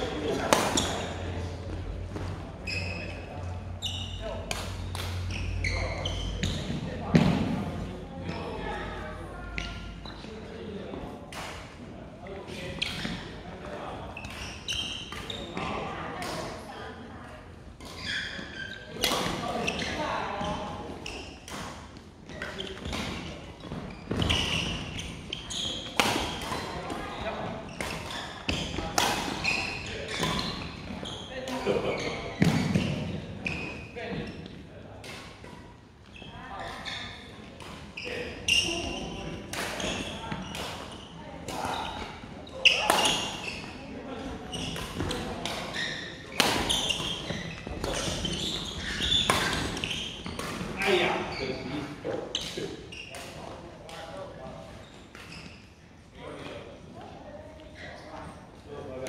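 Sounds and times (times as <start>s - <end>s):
voices in large hall: 0.0s - 59.0s.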